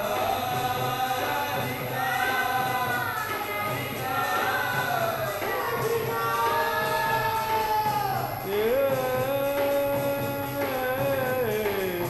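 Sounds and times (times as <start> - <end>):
instrumental accompaniment: 0.0 - 12.0
voices singing devotional song: 0.0 - 12.0.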